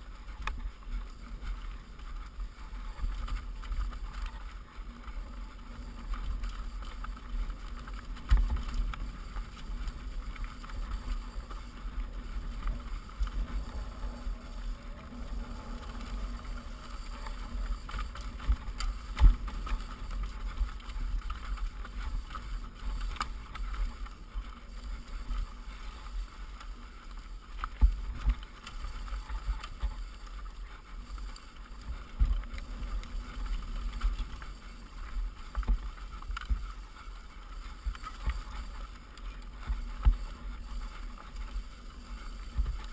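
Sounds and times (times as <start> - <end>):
bike rattling and jolting: 0.0 - 42.9
wind rumble on microphone: 0.0 - 42.9.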